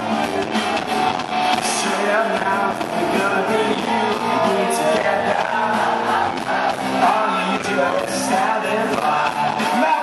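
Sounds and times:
live pop-rock band: 0:00.0 - 0:10.0
strummed guitar: 0:00.0 - 0:10.0.

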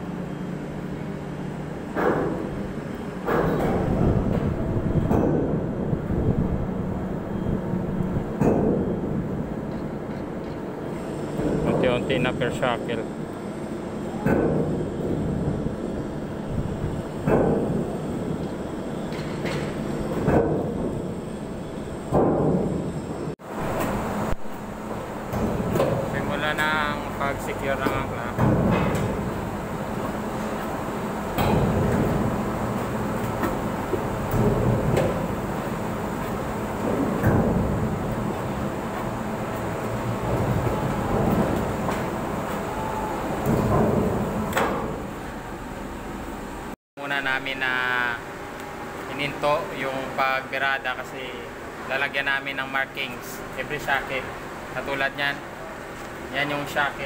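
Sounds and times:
anchor windlass machinery hum: 0:00.0 - 0:57.0.

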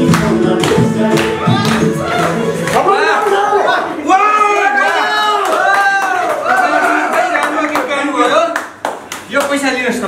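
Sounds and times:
handclapping: 0:00.0 - 0:01.9, 0:05.4 - 0:09.8.

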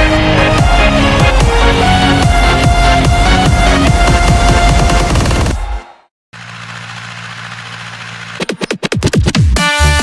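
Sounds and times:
electronic music: 0:00.0 - 0:06.0
rapid electronic beats: 0:00.6 - 0:05.7, 0:08.3 - 0:10.0
tractor diesel engine running: 0:06.4 - 0:08.4.

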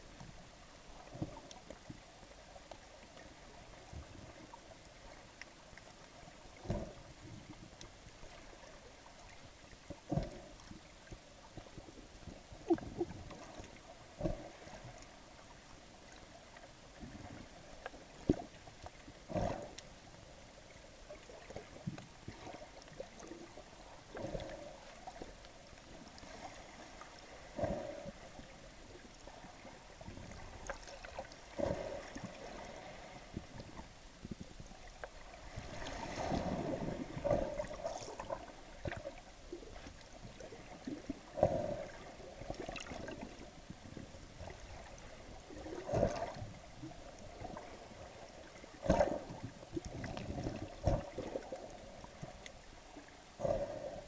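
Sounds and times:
faint underwater hum: 0:00.0 - 0:54.0
water knocks and swishes: 0:00.0 - 0:54.0.

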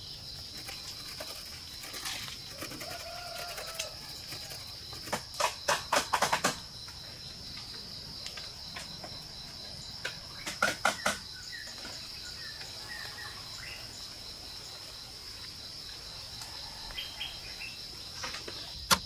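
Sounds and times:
insects droning: 0:00.0 - 0:19.0
sharp knocks: 0:05.1 - 0:06.6, 0:10.4 - 0:11.2.

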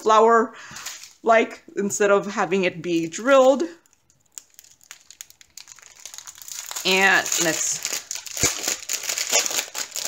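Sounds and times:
plastic bags crinkling: 0:02.9 - 0:10.0.

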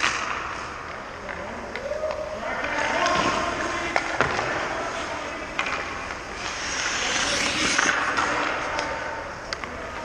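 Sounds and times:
skate blades hissing on ice: 0:05.6 - 0:08.7.

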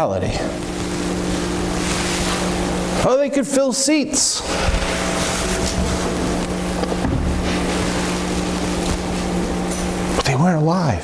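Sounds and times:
ventilation hiss: 0:00.0 - 0:11.0
low hum: 0:00.3 - 0:03.1, 0:04.3 - 0:10.2.

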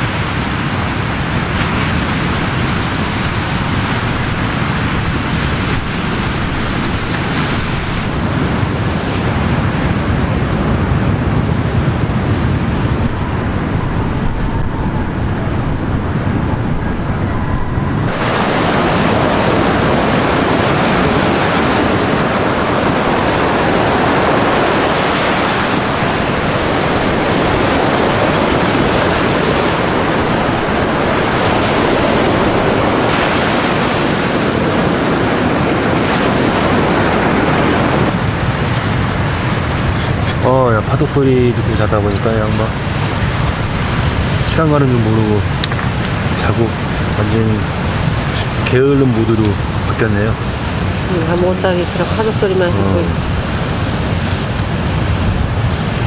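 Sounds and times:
surf breaking on beach: 0:00.0 - 0:56.0
wind on microphone: 0:00.0 - 0:56.0.

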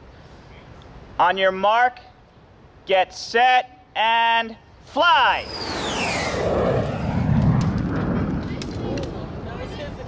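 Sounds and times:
high sound falling in pitch: 0:05.4 - 0:07.2.

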